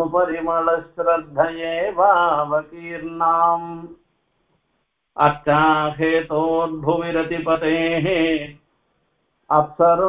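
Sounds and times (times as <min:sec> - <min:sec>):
man chanting: 0:00.0 - 0:04.0, 0:05.2 - 0:08.6, 0:09.5 - 0:10.0.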